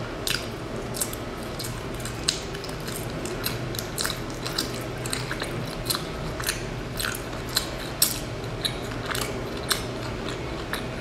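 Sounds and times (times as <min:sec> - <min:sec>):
wet mouth clicks: 0:00.2 - 0:10.9
chewing pastry: 0:00.2 - 0:11.0.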